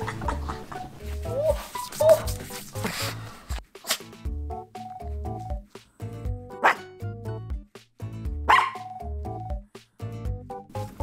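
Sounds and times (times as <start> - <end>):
light background music: 0.0 - 11.0
small dog barking: 6.6 - 6.9, 8.5 - 9.0.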